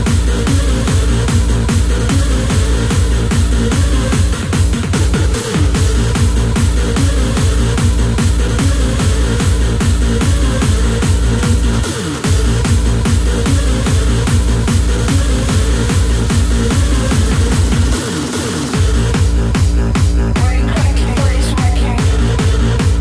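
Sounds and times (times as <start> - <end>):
distorted kick drum: 0.0 - 23.0.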